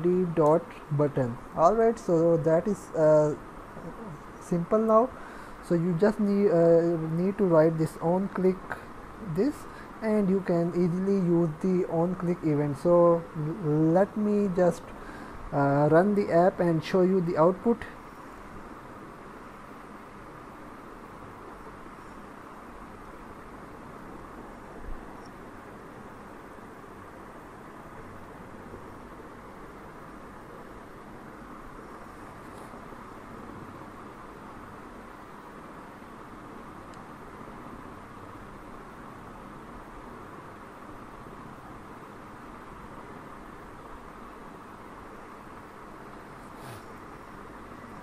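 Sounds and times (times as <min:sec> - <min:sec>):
faint hum: 0:00.0 - 0:48.0
steady hiss: 0:00.0 - 0:48.0.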